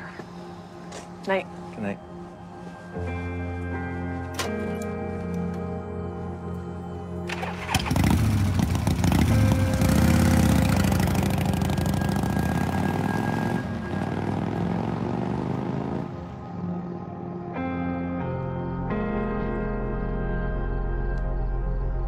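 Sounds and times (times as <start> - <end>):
background music: 0.0 - 22.0
motorcycle engine revving: 7.3 - 16.2.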